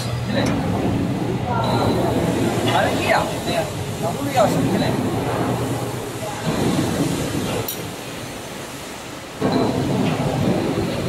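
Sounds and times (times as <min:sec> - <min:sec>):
steady mechanical rumble: 0:00.0 - 0:11.0.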